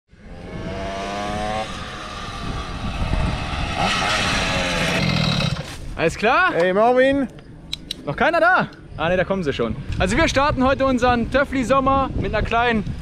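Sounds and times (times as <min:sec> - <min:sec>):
moped engines running: 0:00.2 - 0:05.9.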